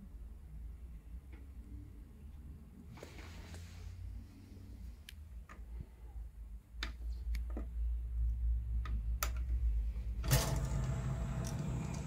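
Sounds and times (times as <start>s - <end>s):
disc tray motor whirr: 10.2s - 12.0s.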